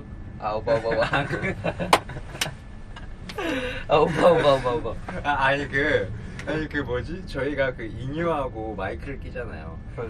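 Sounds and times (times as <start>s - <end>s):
car rumble: 0.0s - 10.0s
young men laughing: 0.7s - 2.7s, 3.3s - 5.6s.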